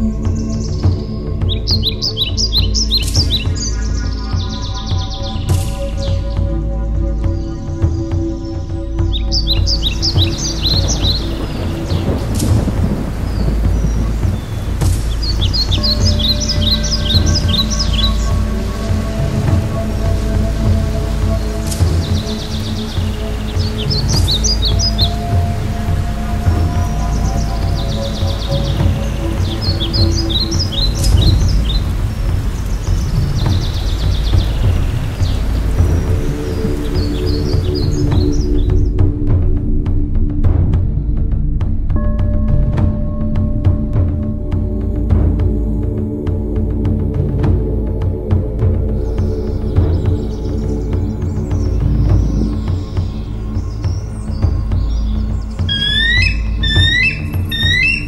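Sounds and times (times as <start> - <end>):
rushing water: 0.0 - 58.0
soft sustained music tones: 0.0 - 58.0
bird singing rapid high notes: 54.9 - 58.0.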